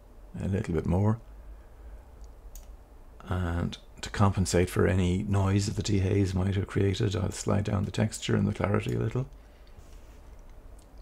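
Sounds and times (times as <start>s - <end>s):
computer mouse clicks: 2.2s - 2.8s.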